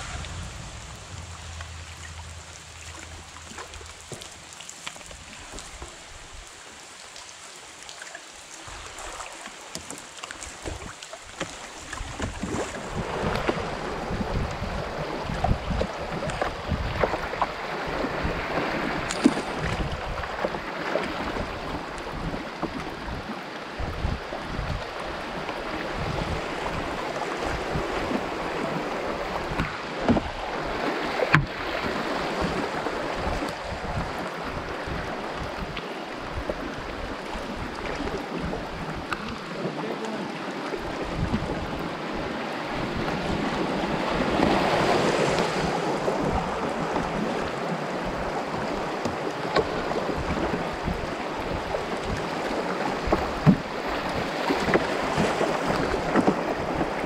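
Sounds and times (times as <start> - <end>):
low steady hum: 0.0 - 5.4
river water rushing: 0.0 - 57.0.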